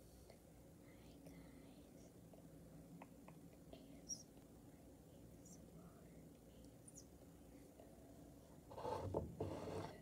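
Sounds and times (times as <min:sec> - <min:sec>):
faint whispering: 0:00.0 - 0:08.5.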